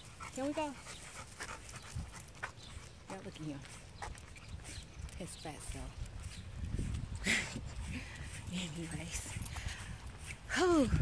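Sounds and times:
dog panting: 0:00.0 - 0:05.2.

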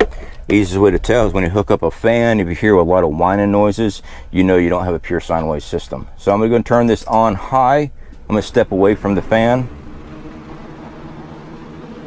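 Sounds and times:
box fan running: 0:00.0 - 0:12.0
faint low motor hum: 0:00.0 - 0:12.0.

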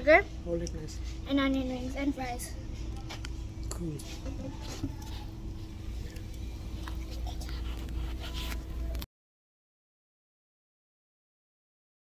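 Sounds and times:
low background hum: 0:00.0 - 0:09.0.

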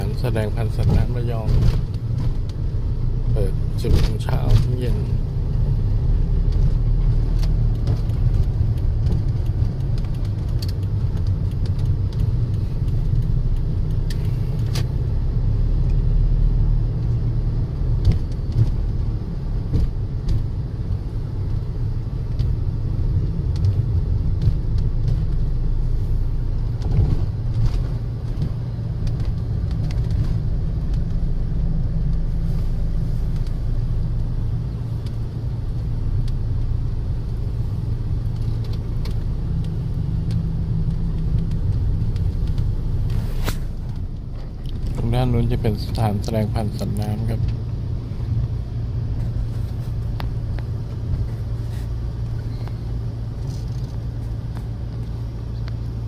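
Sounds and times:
car engine and tyre rumble: 0:00.0 - 0:56.0.

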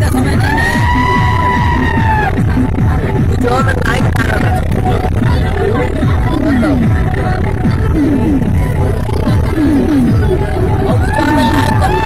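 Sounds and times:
vehicle rumbling across bridge: 0:00.0 - 0:12.0.

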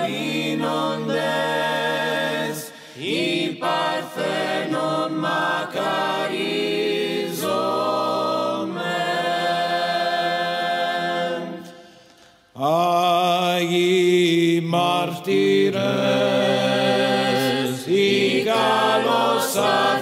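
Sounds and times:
voices chanting in long held notes: 0:00.0 - 0:20.0.

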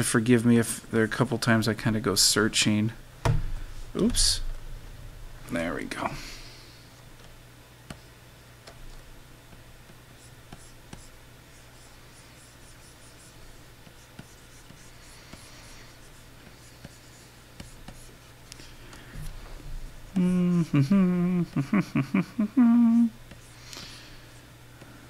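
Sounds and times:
steady low hum: 0:00.0 - 0:25.0
stylus scratching on pen display: 0:10.1 - 0:18.4.

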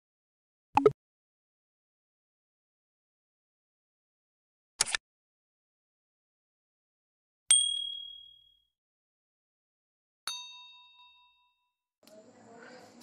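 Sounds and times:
ringing ding sound effect: 0:07.5 - 0:08.6.

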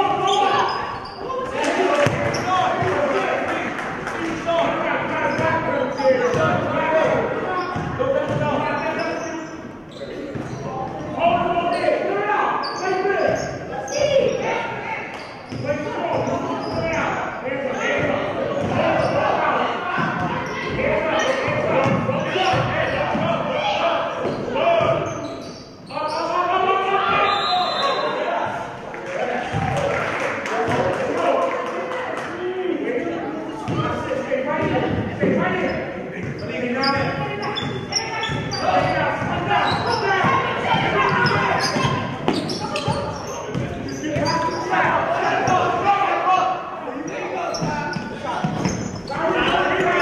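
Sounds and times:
people shouting: 0:38.2 - 0:43.1.

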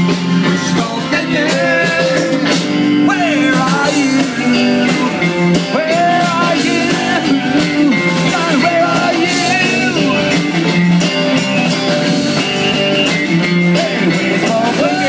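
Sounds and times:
live blues-rock band: 0:00.0 - 0:15.0
person singing: 0:00.4 - 0:10.6, 0:13.2 - 0:15.0.

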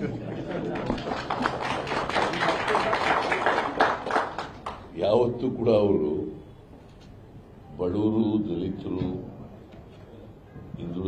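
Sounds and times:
people laughing: 0:00.0 - 0:03.8
clapping and tapping: 0:00.8 - 0:04.9.

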